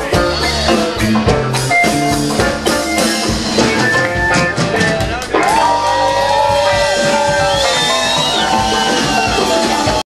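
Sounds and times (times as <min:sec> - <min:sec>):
drums: 0:00.0 - 0:10.0
electric guitar bending notes: 0:00.0 - 0:10.0.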